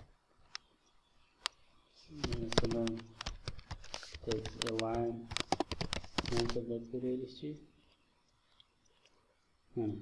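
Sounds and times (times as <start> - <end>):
man talking: 2.0 - 3.2, 4.2 - 5.4, 6.3 - 7.7, 9.8 - 10.0
keyboard typing clicks: 2.2 - 6.6.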